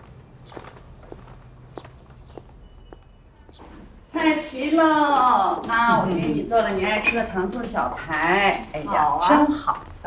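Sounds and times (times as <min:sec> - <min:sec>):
footsteps on tiled paving: 0:00.0 - 0:10.0.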